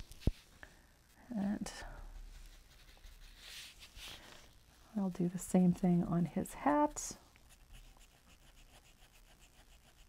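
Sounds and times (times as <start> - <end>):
dry paintbrush scratching: 2.4 - 4.0, 7.5 - 10.0.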